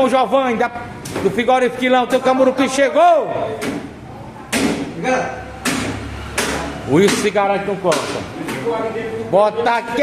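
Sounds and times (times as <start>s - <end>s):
knife chopping into wooden block: 5.6s - 8.6s.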